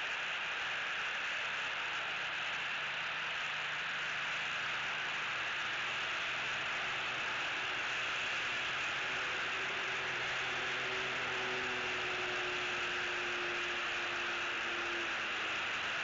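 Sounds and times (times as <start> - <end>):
steady hiss: 0.0 - 16.0
faint hum of passing vehicle: 2.6 - 16.0.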